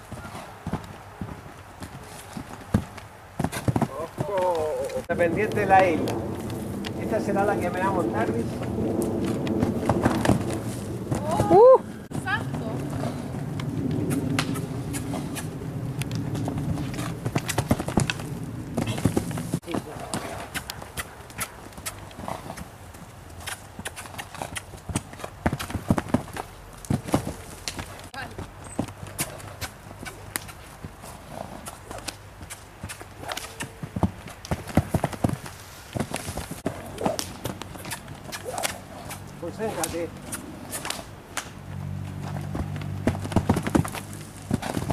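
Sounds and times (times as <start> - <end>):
horse hoofbeats on dirt: 0.0 - 44.9.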